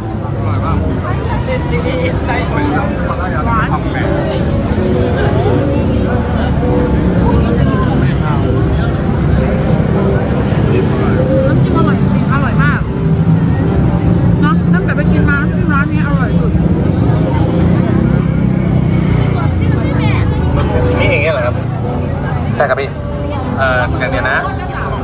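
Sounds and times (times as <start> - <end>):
crowd murmur: 0.0 - 25.0
low rumble of traffic: 0.0 - 25.0
people talking: 0.0 - 25.0.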